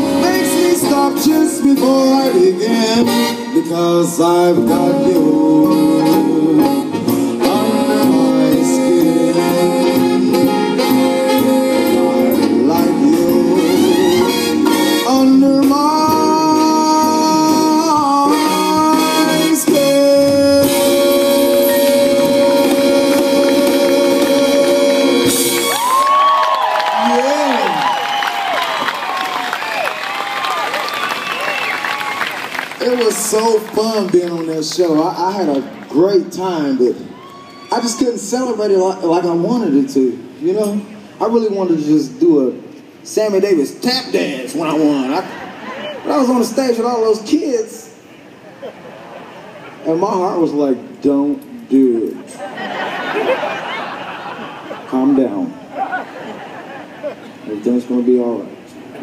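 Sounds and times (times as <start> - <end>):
big band music through pa: 0.0 - 26.4
audience cheering and applauding: 21.4 - 36.0.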